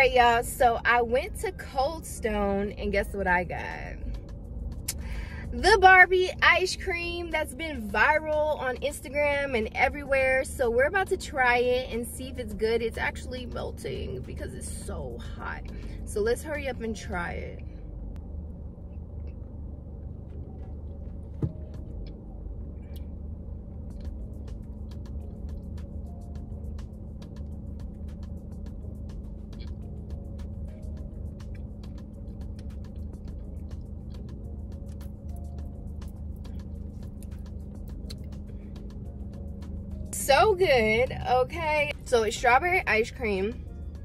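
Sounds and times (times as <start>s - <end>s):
car engine idling: 0.0s - 44.0s
soft background music: 0.0s - 44.0s.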